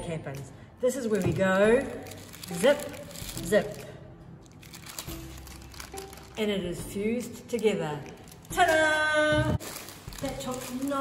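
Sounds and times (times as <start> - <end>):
paper and foil crinkling: 1.2 - 6.4, 7.2 - 11.0.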